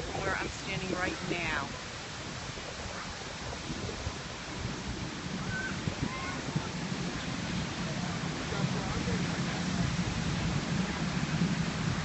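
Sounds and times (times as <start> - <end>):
fountain jets splashing into pool: 0.0 - 12.0.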